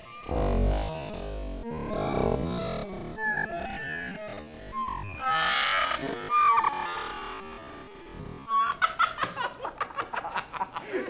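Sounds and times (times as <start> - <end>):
person laughing loudly: 8.5 - 11.0.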